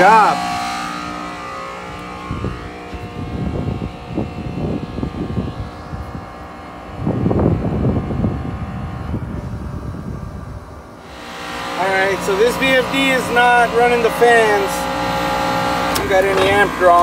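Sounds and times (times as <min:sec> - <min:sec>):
compressor hum: 0:00.0 - 0:17.0
wind buffeting microphone: 0:00.5 - 0:17.0.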